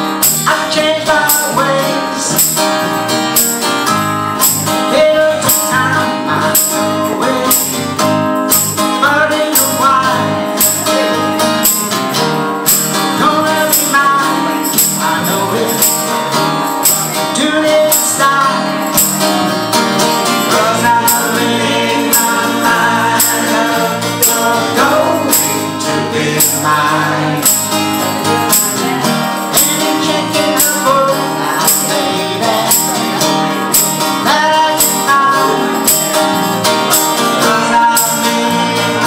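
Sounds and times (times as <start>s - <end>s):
electric bass: 0.0s - 39.0s
guitar: 0.0s - 39.0s
man singing: 0.0s - 39.0s
tambourine struck on beat: 0.0s - 39.0s.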